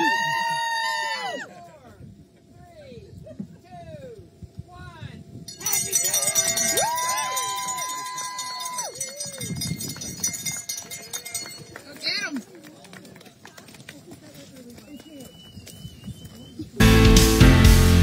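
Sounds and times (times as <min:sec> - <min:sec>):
people whooping and cheering: 0:00.0 - 0:01.6, 0:05.6 - 0:09.7
cowbell clanging rapidly: 0:05.5 - 0:06.8, 0:07.5 - 0:11.8.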